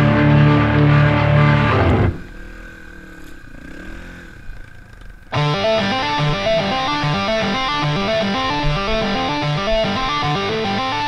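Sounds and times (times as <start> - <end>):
motorbike engine revving: 0.0 - 11.0.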